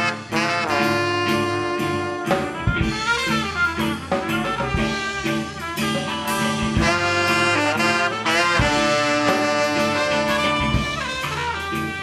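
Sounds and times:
electric bass: 0.0s - 12.0s
live band with horn section: 0.0s - 12.0s.

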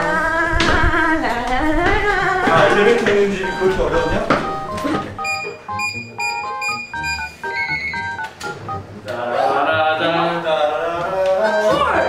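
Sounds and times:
keypad beeps: 3.4s - 8.9s, 11.4s - 12.0s.

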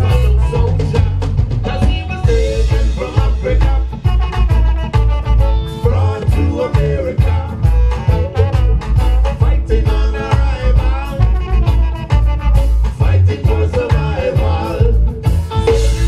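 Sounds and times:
heavy pulsing bass line: 0.0s - 16.0s
reggae band playing: 0.0s - 16.0s
trombone: 0.0s - 16.0s.

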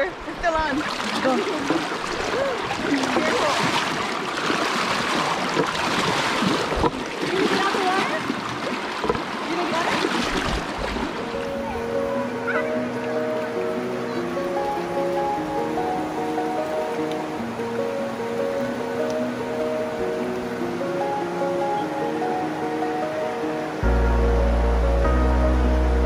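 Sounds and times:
river water rushing: 0.0s - 26.0s
slow melody of held notes: 11.2s - 26.0s
deep loud bass: 23.8s - 26.0s.

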